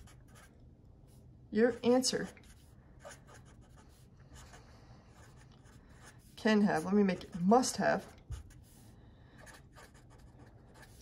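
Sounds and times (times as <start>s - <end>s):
marker writing on paper: 0.0s - 0.5s, 1.8s - 11.0s.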